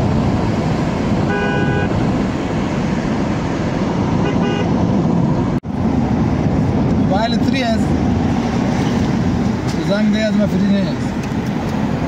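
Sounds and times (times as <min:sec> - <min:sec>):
car road noise: 0:00.0 - 0:12.0
vehicle horn: 0:01.2 - 0:02.0, 0:04.2 - 0:04.8.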